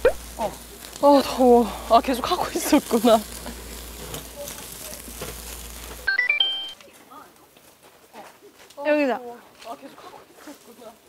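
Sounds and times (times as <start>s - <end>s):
faint voices: 0.0s - 6.0s
pork belly sizzling on a grill: 0.0s - 11.0s
rising chime notes sound effect: 6.1s - 6.8s.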